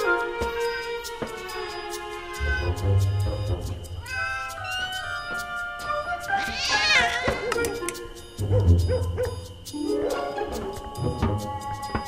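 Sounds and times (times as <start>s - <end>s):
soundtrack music of held tones: 0.0s - 12.0s
cat meowing: 2.4s - 2.8s, 4.0s - 7.8s.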